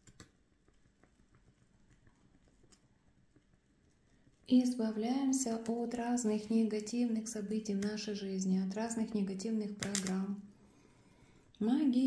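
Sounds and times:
faint crackles of burning wood: 0:00.0 - 0:04.5.

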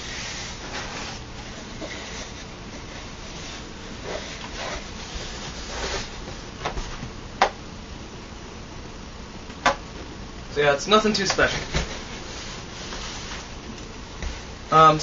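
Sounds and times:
cardboard rubbing and scraping: 0:00.0 - 0:07.0, 0:11.4 - 0:13.5.

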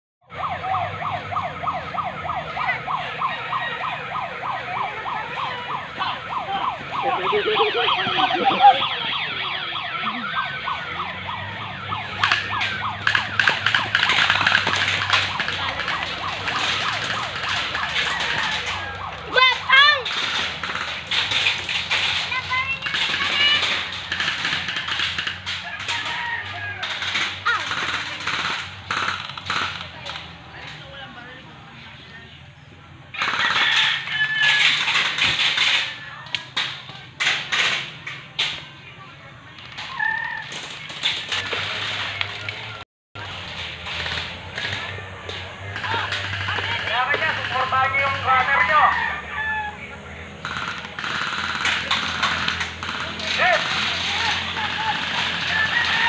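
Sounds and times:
airsoft guns firing: 0:06.7 - 0:30.4, 0:33.2 - 0:38.6, 0:43.8 - 0:48.2, 0:50.4 - 0:56.0.

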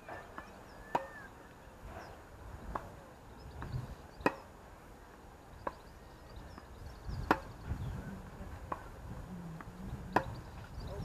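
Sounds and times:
tennis ball impact pop: 0:00.9 - 0:01.2, 0:02.6 - 0:02.9, 0:03.6 - 0:04.4, 0:06.6 - 0:07.6, 0:09.6 - 0:10.4.

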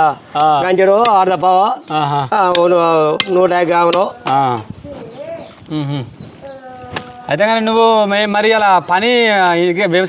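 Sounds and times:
quiet talk: 0:01.6 - 0:08.1.

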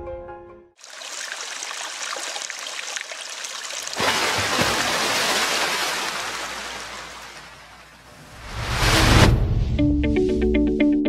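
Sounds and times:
water trickling: 0:00.8 - 0:08.0
water splashing: 0:00.8 - 0:09.0.

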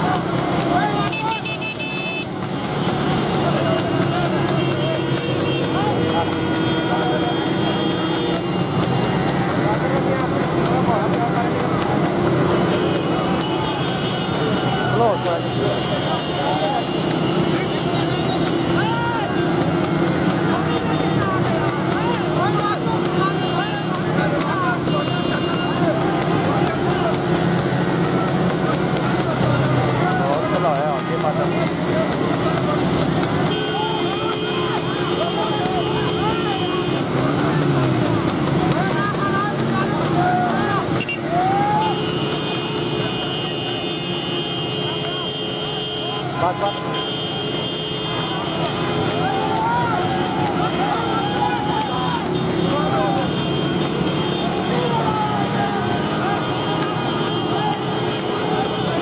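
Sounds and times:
men shouting: 0:00.0 - 0:59.0
motorcycle engines running: 0:00.0 - 0:59.0.

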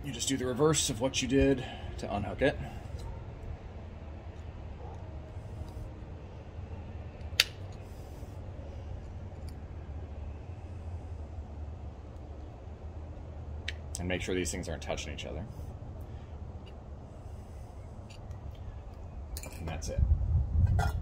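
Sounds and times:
low background rumble: 0:00.0 - 0:21.0.

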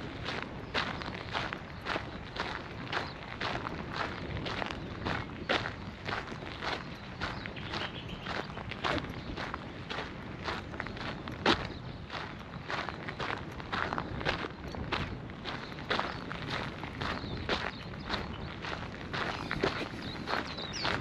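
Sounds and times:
footsteps on dirt path: 0:00.0 - 0:21.0.

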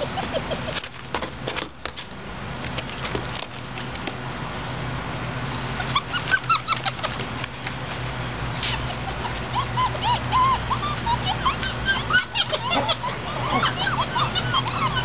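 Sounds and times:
puppies whimpering and yipping: 0:00.0 - 0:00.8, 0:05.7 - 0:07.4, 0:08.5 - 0:15.0.

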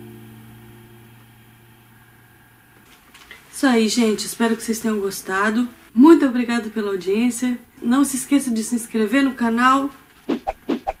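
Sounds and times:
classical guitar chord ringing: 0:00.0 - 0:02.8.

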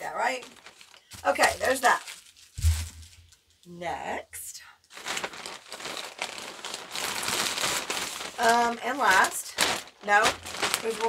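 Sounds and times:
packaging crinkling: 0:00.0 - 0:03.4, 0:04.9 - 0:11.0.

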